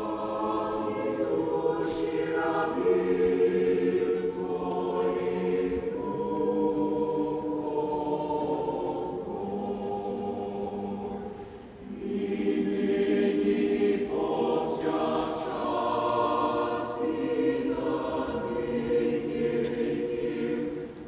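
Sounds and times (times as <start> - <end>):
mixed choir singing chords: 0.0 - 21.0.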